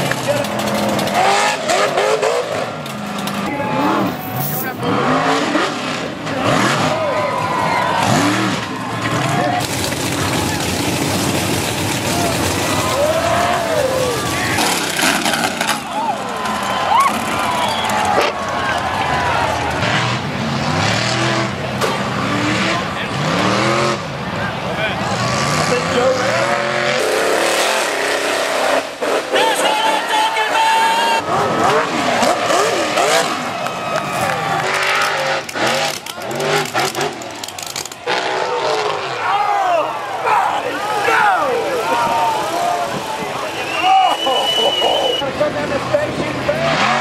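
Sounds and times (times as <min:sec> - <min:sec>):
engines revving hard: 0:00.0 - 0:47.0
spectators shouting: 0:04.8 - 0:21.7, 0:22.4 - 0:47.0.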